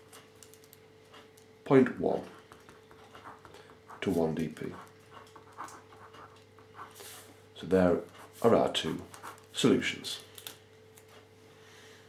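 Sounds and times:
low steady hum: 0:00.0 - 0:12.0
pen scratching on paper: 0:02.3 - 0:07.2, 0:09.1 - 0:09.5.

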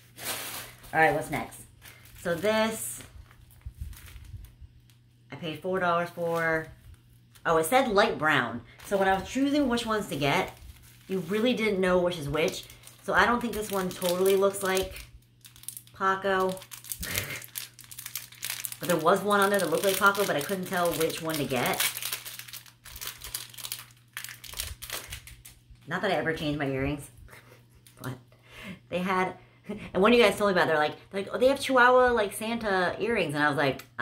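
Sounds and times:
plastic package rustling: 0:00.0 - 0:05.1, 0:05.7 - 0:25.7.

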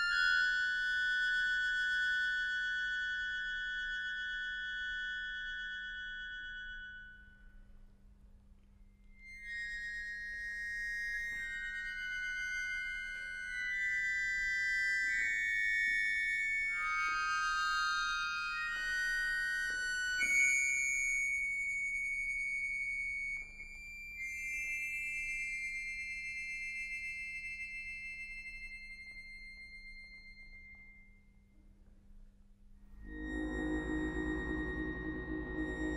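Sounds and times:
accordion playing chords: 0:33.1 - 0:35.9.

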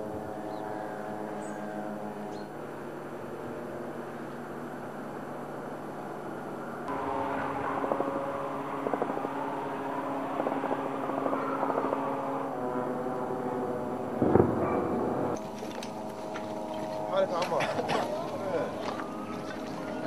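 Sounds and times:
engine drone: 0:00.0 - 0:20.0.

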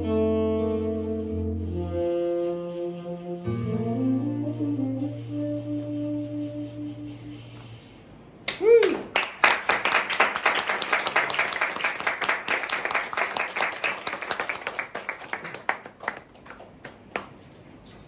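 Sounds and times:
audience applauding: 0:08.8 - 0:17.4.

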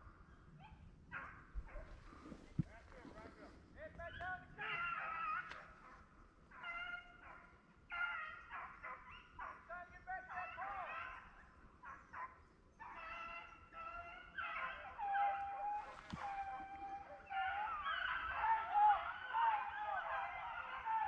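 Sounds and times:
hounds baying: 0:00.0 - 0:21.0.

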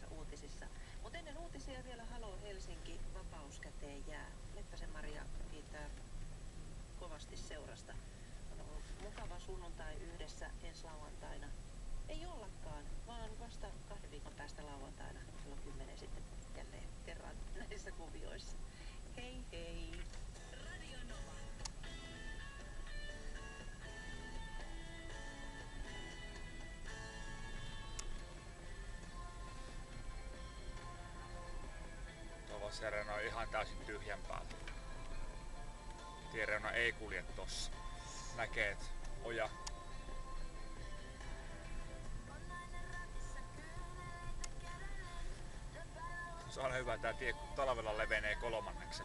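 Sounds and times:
engine and road rumble: 0:00.0 - 0:49.0
music from car radio: 0:00.0 - 0:49.0.

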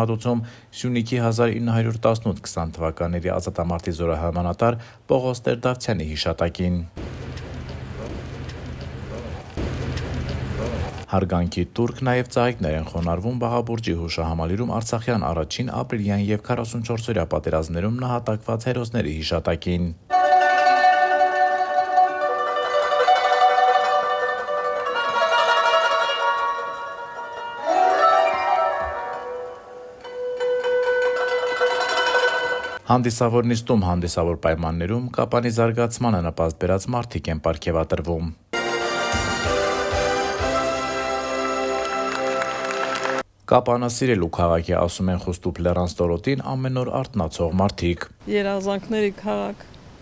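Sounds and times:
folk dance music: 0:07.0 - 0:11.1, 0:20.1 - 0:32.8, 0:38.6 - 0:43.2
narrator speaking: 0:43.5 - 0:49.7.

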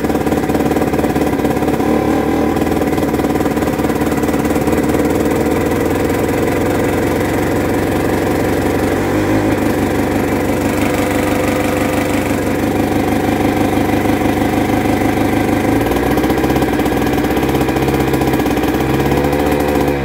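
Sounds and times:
diesel engine cranking: 0:00.0 - 0:20.0
two-stroke engine running: 0:00.0 - 0:20.0.

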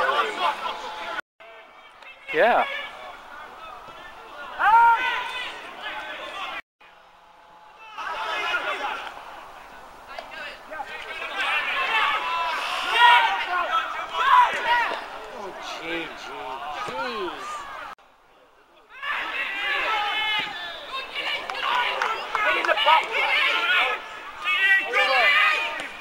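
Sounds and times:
people shouting on football pitch: 0:00.0 - 0:18.0, 0:18.8 - 0:26.0.

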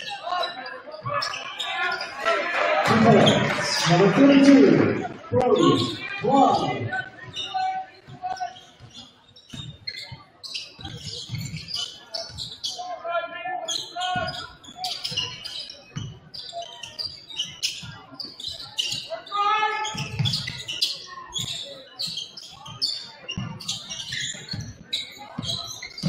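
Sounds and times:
players shouting: 0:01.2 - 0:07.6.

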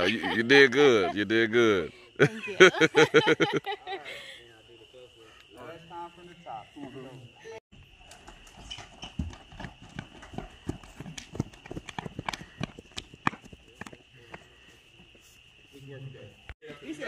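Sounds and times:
night insects droning: 0:00.0 - 0:17.0
footsteps running on concrete: 0:08.2 - 0:14.6.

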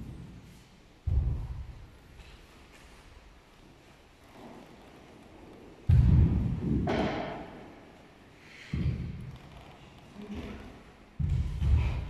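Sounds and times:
sharp slap: 0:05.9 - 0:07.6.

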